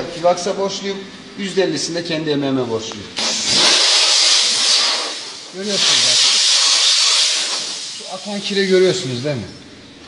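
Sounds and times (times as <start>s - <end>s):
steam cleaner nozzle hissing: 3.2s - 9.4s.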